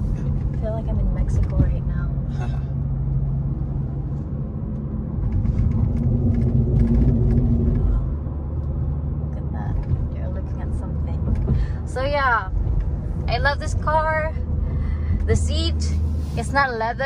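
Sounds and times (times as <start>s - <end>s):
road and engine rumble in car: 0.0s - 17.0s.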